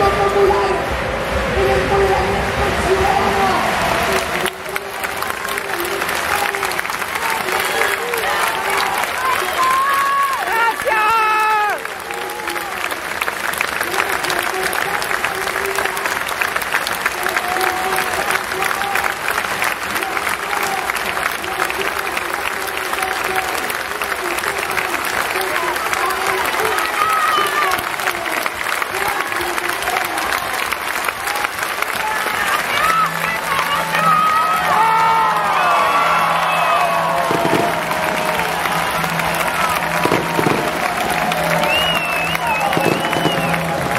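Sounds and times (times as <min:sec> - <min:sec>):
crowd clapping: 0:00.0 - 0:43.9.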